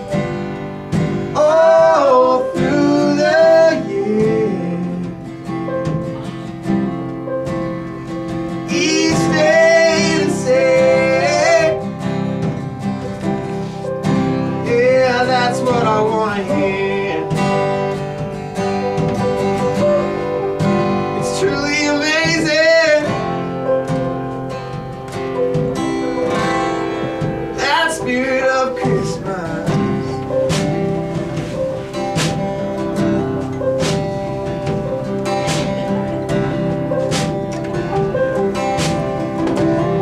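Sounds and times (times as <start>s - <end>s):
strummed acoustic guitar: 0.0s - 40.0s.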